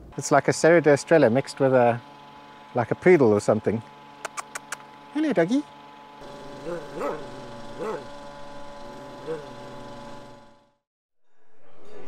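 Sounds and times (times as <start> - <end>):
steady hum: 0.0 - 10.8.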